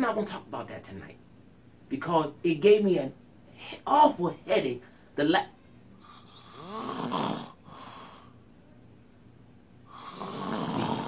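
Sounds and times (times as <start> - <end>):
person mock snoring: 6.0 - 8.2, 9.9 - 11.0.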